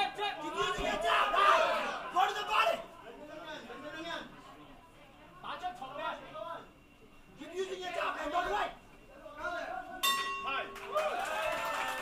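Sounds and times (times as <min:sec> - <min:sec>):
crowd shouting and cheering: 0:00.0 - 0:02.9, 0:09.9 - 0:12.0.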